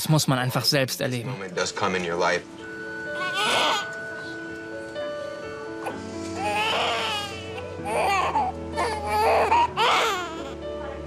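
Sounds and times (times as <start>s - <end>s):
background music with held notes: 0.0s - 11.0s
baby crying: 3.1s - 4.2s, 5.8s - 10.6s.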